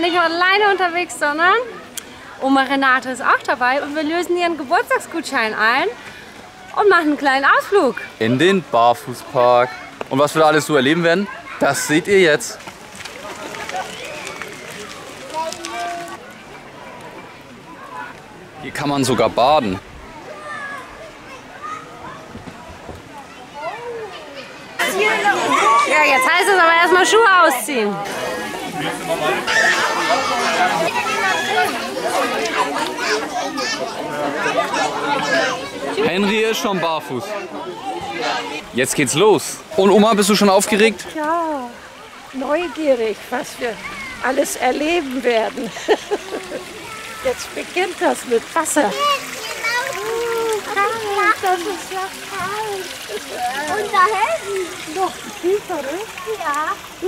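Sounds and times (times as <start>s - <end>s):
chatter of many people: 0.0s - 57.0s
feet splashing through shallow water: 11.4s - 18.4s.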